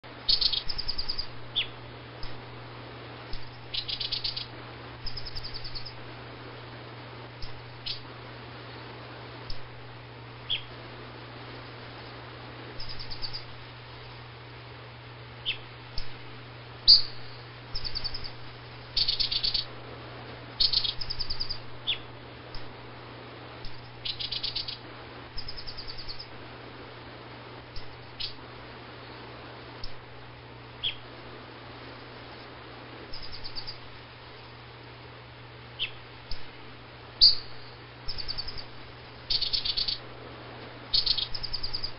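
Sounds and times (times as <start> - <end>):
low hum: 0.0 - 41.9
bird chirping: 0.2 - 2.4, 3.3 - 6.0, 7.4 - 8.1, 10.4 - 10.8, 12.8 - 14.2, 15.4 - 16.1, 16.8 - 19.7, 20.6 - 22.7, 23.6 - 24.8, 25.4 - 26.4, 27.8 - 28.4, 30.8 - 31.1, 33.1 - 33.9, 35.8 - 36.4, 37.2 - 40.0, 40.9 - 41.9.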